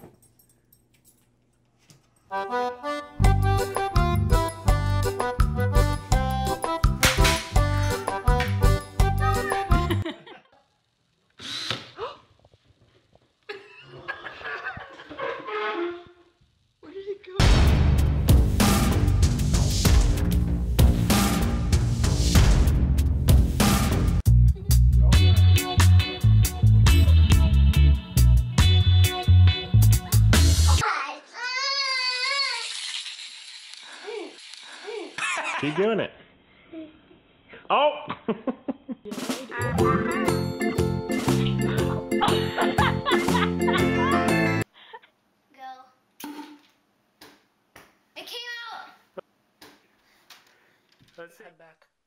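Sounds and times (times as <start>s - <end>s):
music with steady beat: 2.5s - 10.0s, 17.4s - 30.8s, 39.3s - 44.6s
child singing high note: 30.8s - 32.6s.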